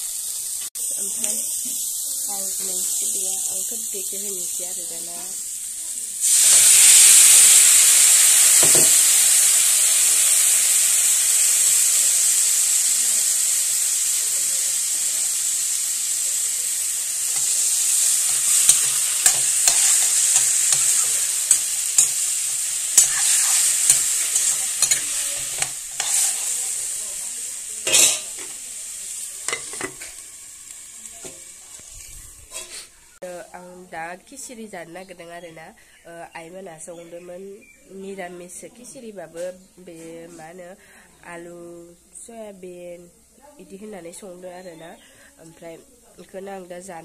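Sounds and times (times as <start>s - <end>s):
food sizzling in hot oil: 0.0s - 33.8s
metal spatula scraping wok: 16.9s - 27.2s, 27.8s - 28.6s, 29.4s - 30.3s, 31.2s - 33.0s.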